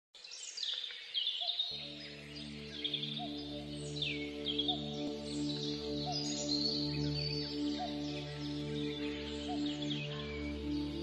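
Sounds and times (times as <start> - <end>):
small birds chirping: 0.2 - 11.0
sustained low humming chord: 1.7 - 11.0.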